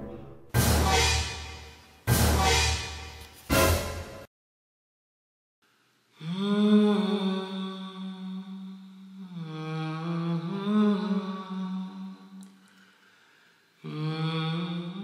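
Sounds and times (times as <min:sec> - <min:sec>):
person humming: 0:06.2 - 0:12.5, 0:13.8 - 0:15.0.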